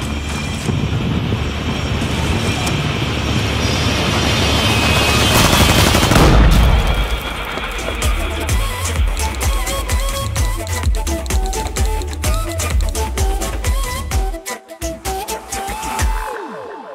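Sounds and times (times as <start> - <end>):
trailer music with noise rush: 0.0 - 14.4
deep boom: 5.4 - 9.6.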